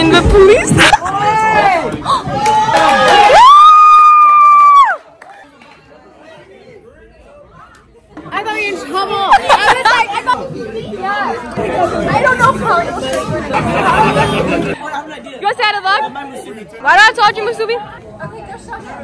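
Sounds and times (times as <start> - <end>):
people chattering: 0.0 - 3.9, 4.7 - 19.0.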